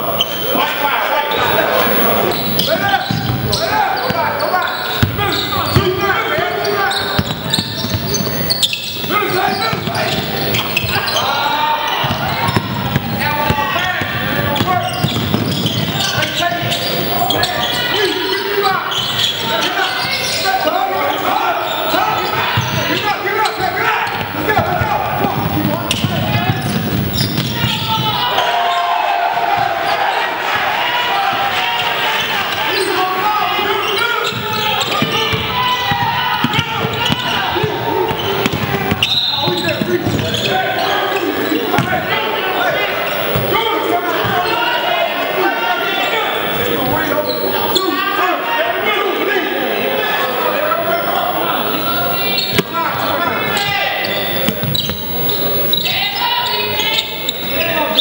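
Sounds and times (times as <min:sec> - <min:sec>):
players and spectators shouting: 0:00.0 - 0:58.0.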